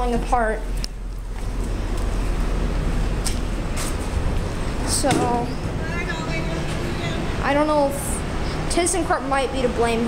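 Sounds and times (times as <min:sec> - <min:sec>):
traffic noise: 0:00.0 - 0:10.0
wind: 0:00.0 - 0:10.0.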